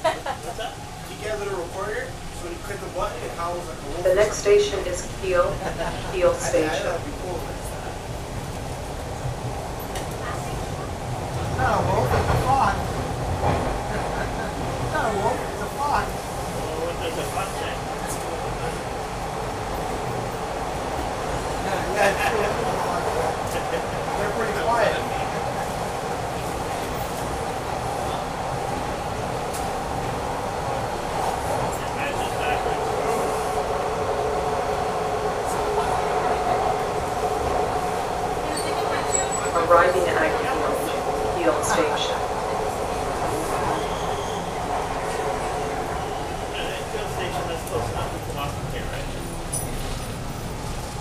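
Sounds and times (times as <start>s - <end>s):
train wheels rumbling on rail: 0.0s - 51.0s
train whine: 0.0s - 51.0s.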